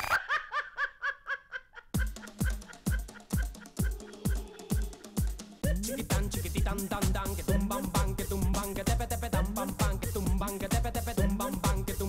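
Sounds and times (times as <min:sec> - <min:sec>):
woman laughing: 0:00.0 - 0:05.4
backing music: 0:02.0 - 0:12.0.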